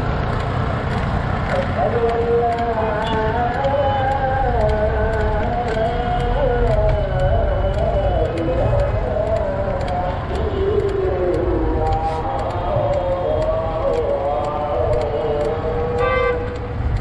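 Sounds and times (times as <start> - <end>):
wind and road rumble: 0.0 - 17.0
vehicle horn toot: 16.0 - 16.5.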